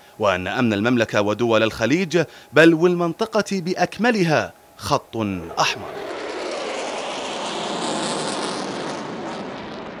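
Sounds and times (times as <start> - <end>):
jet engine rushing: 5.3 - 10.0.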